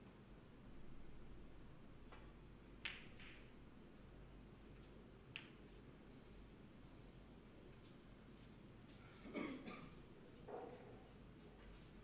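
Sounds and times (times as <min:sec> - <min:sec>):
snooker balls clicking together: 0:02.1 - 0:03.5, 0:04.8 - 0:05.7
cue tip tapping cue ball: 0:02.8 - 0:03.5.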